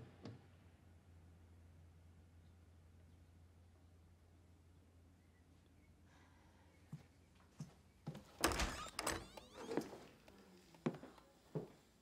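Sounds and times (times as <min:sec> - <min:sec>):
door shutting thunk: 0:08.4 - 0:09.4.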